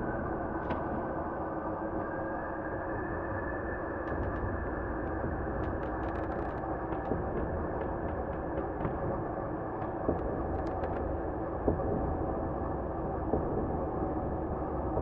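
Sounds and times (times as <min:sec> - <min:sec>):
faint clicks and ticks: 0:04.0 - 0:09.0, 0:09.8 - 0:11.1.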